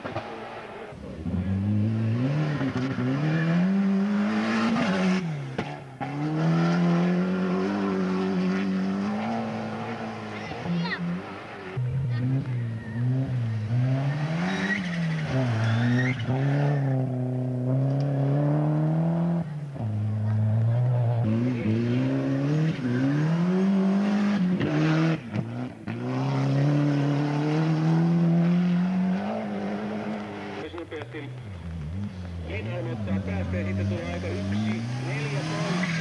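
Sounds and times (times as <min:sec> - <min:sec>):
rally cars passing at speed: 0:00.0 - 0:36.0.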